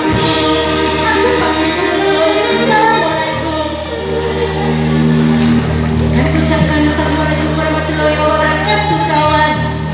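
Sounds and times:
band accompaniment: 0.0 - 9.9.

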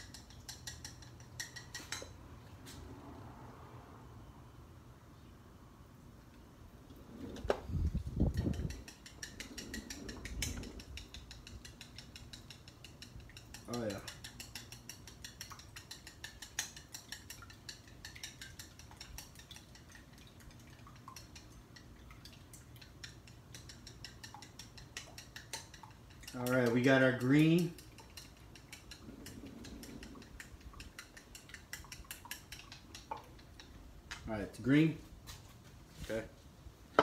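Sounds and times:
chopsticks beating egg in a bowl: 0.0 - 2.1, 8.2 - 33.8.

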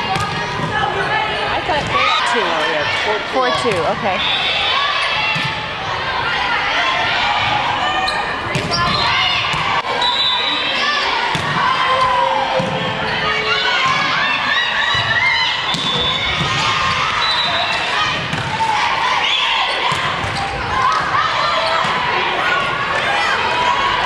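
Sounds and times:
players shouting: 0.0 - 24.0
sneakers squeaking: 8.0 - 18.6, 19.2 - 22.0.

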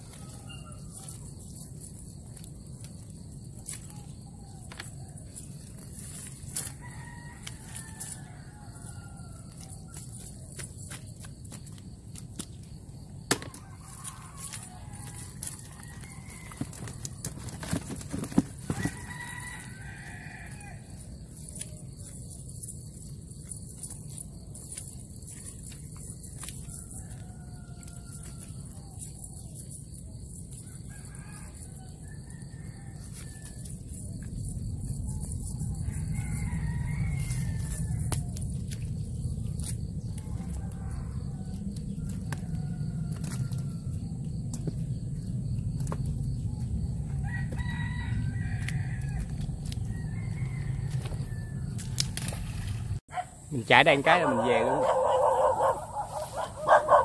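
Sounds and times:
roosters crowing: 0.0 - 1.4, 3.6 - 10.8, 12.9 - 22.6, 26.0 - 57.0
cast net clicks and rustles: 13.4 - 19.5.

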